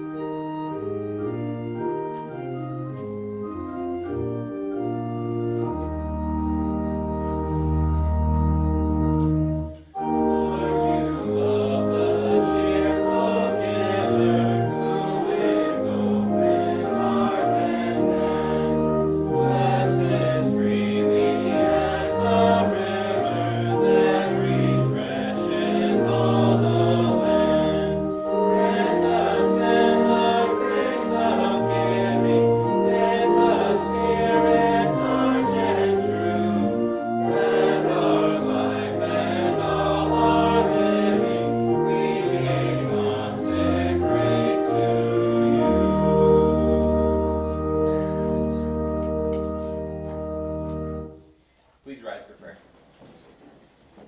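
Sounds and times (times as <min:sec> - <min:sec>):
congregation singing a hymn: 0:00.0 - 0:51.2
organ chords: 0:00.0 - 0:51.5
instrumental accompaniment: 0:00.0 - 0:54.0.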